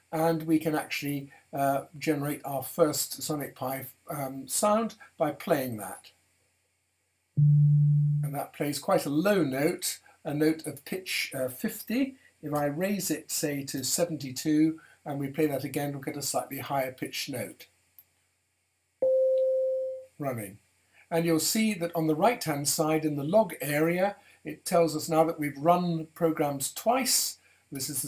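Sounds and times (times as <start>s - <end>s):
low synth beep tone: 7.4s - 8.4s, 19.0s - 20.1s
pure synth tone: 7.4s - 8.4s.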